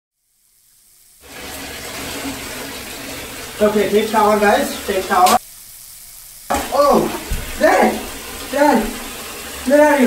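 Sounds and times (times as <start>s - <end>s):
shower water hissing: 0.1s - 10.0s.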